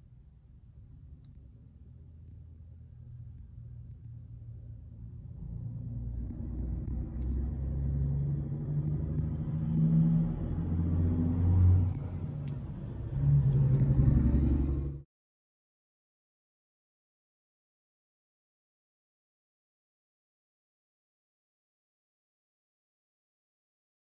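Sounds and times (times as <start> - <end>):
vehicle engine revving: 5.4 - 15.0.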